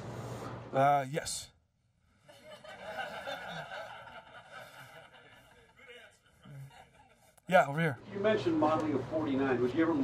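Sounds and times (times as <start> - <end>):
audience laughing: 2.3 - 7.3.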